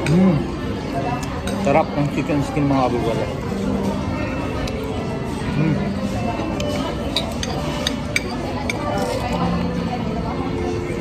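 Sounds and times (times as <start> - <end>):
cutlery clinking on plate: 6.6 - 9.3.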